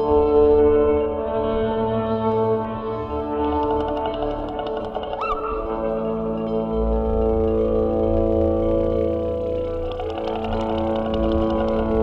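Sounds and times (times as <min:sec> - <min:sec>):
droning synth chord: 0:00.0 - 0:12.0
faint fast ticks: 0:03.3 - 0:12.0.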